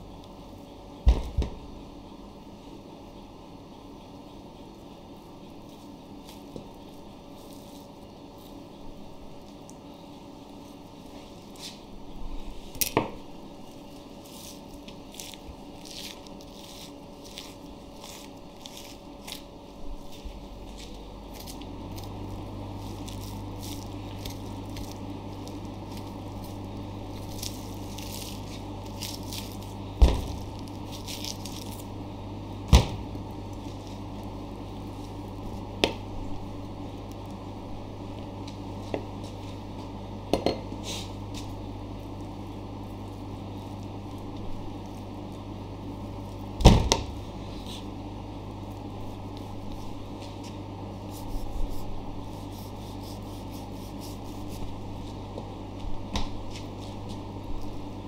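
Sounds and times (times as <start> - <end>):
steady low hum: 0.0 - 58.0
knife cutting raw meat: 51.1 - 54.7.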